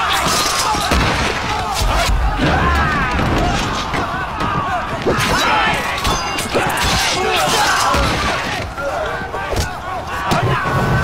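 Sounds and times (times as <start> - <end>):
men shouting and yelling: 0.0 - 11.0
sharp impacts: 0.8 - 8.5
low booms: 1.6 - 5.2.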